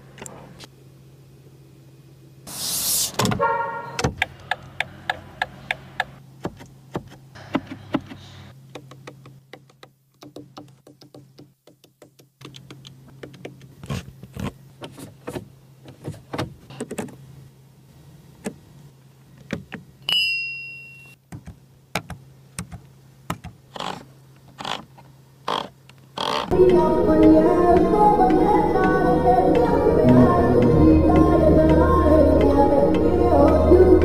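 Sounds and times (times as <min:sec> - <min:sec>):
steady low hum: 0:00.0 - 0:09.5, 0:21.6 - 0:34.0.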